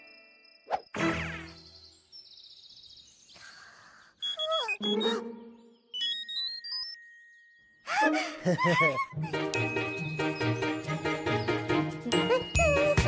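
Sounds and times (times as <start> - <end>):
cartoon music: 4.2 - 7.0, 7.9 - 13.0
rising run of short beeps: 5.9 - 7.3.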